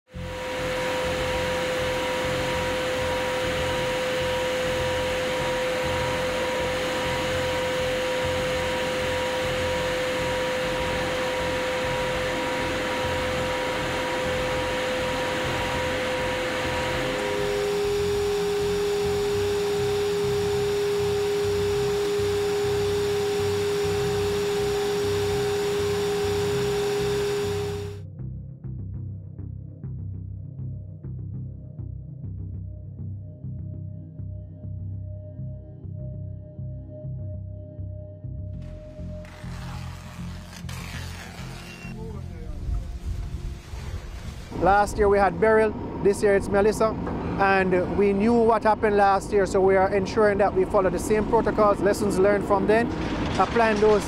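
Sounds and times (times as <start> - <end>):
engine and propeller drone: 0.1 - 28.0, 38.6 - 54.0.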